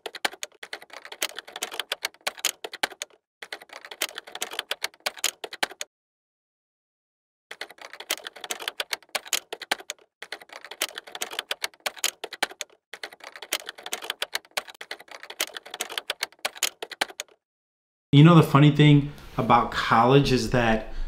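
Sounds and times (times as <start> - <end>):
rapid keyboard typing: 0.0 - 5.9, 7.5 - 17.4.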